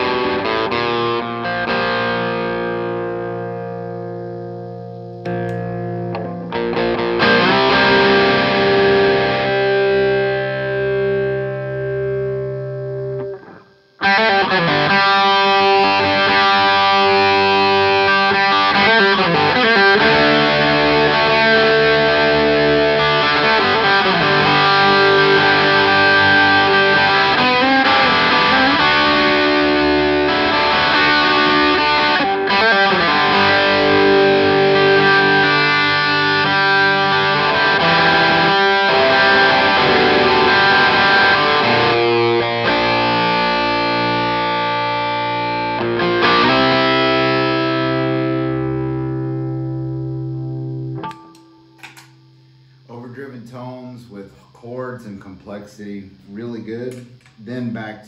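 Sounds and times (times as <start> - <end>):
overdriven electric guitar chords: 0.0 - 53.0.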